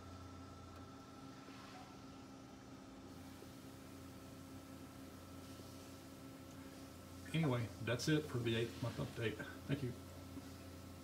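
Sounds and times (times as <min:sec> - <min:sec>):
aquarium pump hum and hiss: 0:00.0 - 0:11.0.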